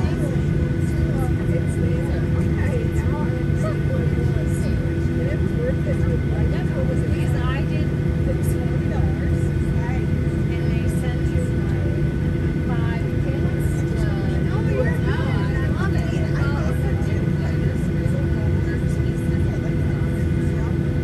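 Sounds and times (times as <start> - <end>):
aircraft cabin hum: 0.0 - 21.0
passengers chatting: 0.0 - 21.0.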